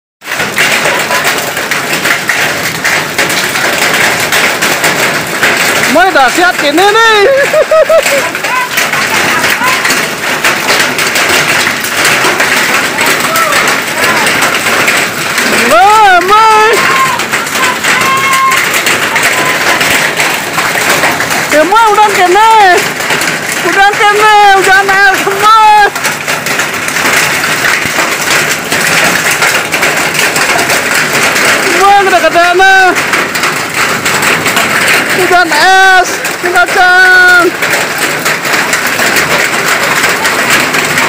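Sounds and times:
hail and rain on concrete: 0.2 - 41.0
high-pitched voices calling out: 8.2 - 10.0, 15.5 - 20.9.

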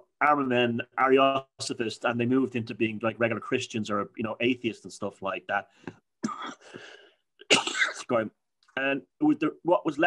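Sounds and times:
man coughing: 6.2 - 8.2.

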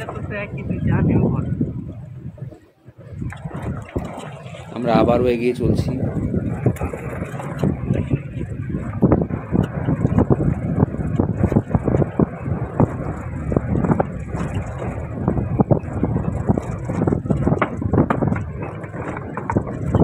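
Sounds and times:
engine and tyres rumbling: 0.0 - 20.0
knocks and rattles from bumps: 6.2 - 20.0.

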